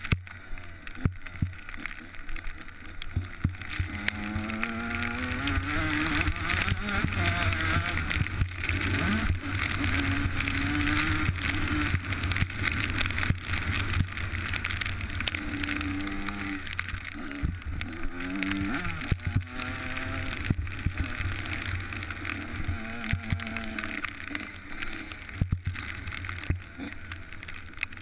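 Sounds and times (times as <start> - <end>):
dirt bike engine revving: 0.5 - 27.4.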